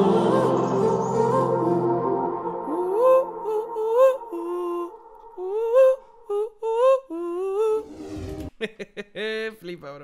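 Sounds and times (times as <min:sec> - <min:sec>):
person humming a melody: 0:00.0 - 0:07.9.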